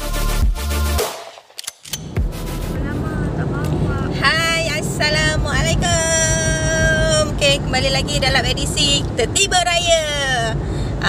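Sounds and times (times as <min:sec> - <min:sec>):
electronic intro music: 0:00.0 - 0:04.0
sharp clicks: 0:01.0 - 0:02.2
car cabin road noise: 0:01.9 - 0:11.0
woman speaking: 0:02.6 - 0:10.6.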